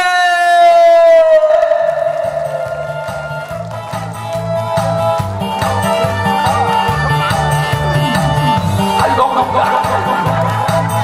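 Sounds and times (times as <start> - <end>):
backing music over speakers: 0.0 - 11.0.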